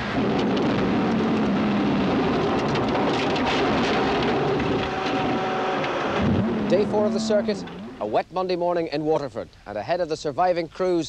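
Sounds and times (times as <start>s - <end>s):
rain on windscreen: 0.0s - 8.1s
tyre and road noise: 0.0s - 8.2s
car engine running hard: 0.6s - 8.0s.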